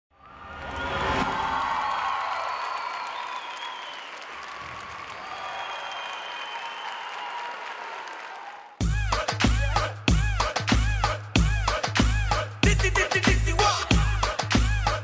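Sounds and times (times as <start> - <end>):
audience applauding and cheering: 0.2 - 12.5.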